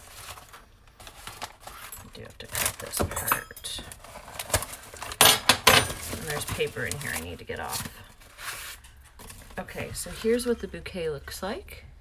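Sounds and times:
paper wrapping crackling: 0.0 - 3.0, 3.9 - 5.2, 5.9 - 10.4.

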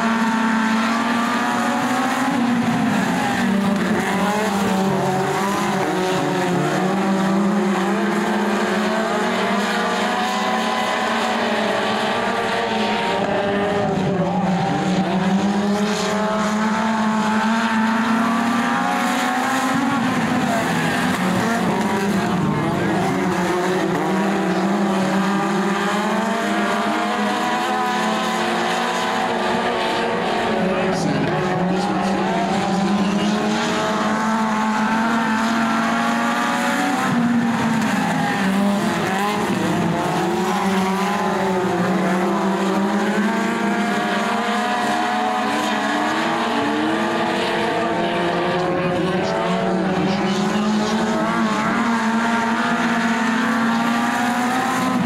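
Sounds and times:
race car engines: 0.0 - 55.0.

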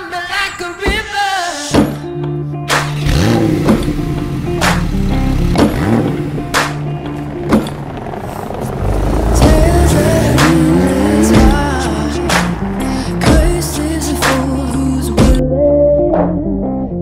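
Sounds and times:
background music with steady beat: 0.0 - 8.2, 9.1 - 17.0
car engine revving: 2.7 - 15.4.

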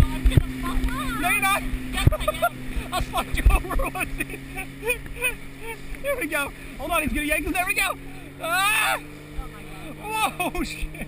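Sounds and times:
motorboat engine humming: 0.0 - 11.0
water wash: 0.0 - 11.0
wind: 0.0 - 11.0
people shouting and laughing: 0.9 - 5.9, 7.9 - 11.0.

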